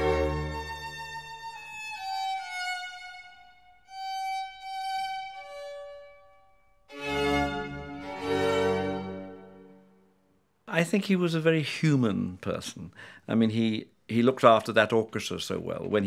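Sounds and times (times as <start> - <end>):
string chords with low bass: 0.0 - 4.1, 6.9 - 9.9
slow violin melody: 0.0 - 10.0.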